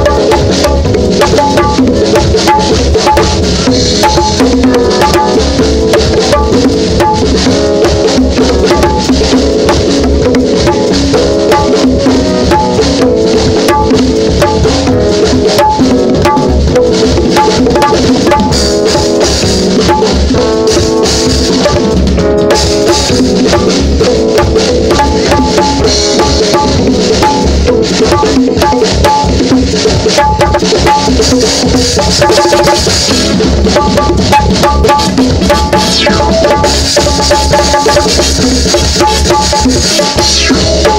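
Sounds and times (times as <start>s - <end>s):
bongos played by hand: 0.0s - 40.9s
live band music: 0.0s - 40.9s.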